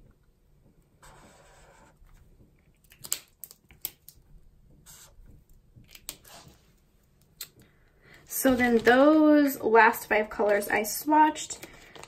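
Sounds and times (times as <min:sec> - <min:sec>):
highlighter scratching on paper: 0:01.0 - 0:02.0, 0:04.8 - 0:05.2.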